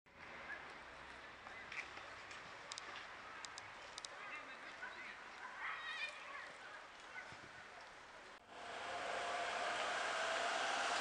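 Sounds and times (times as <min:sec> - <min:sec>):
faint outdoor ambience: 0:00.1 - 0:11.0.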